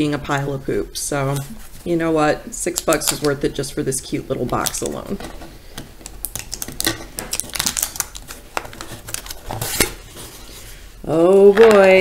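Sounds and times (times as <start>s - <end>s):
packing tape peeling: 6.0s - 10.3s.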